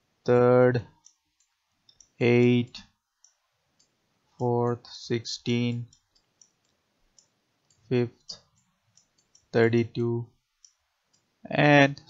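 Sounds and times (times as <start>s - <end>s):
man speaking: 0.3s - 1.0s, 2.2s - 3.0s, 4.4s - 5.9s, 7.9s - 8.5s, 9.6s - 10.3s, 11.5s - 12.0s.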